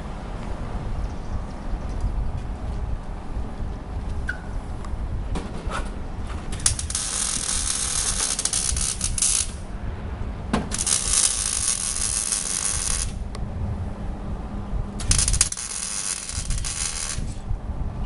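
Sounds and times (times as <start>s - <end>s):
mechanical ratcheting rattle: 10.7s - 13.2s, 15.0s - 17.4s.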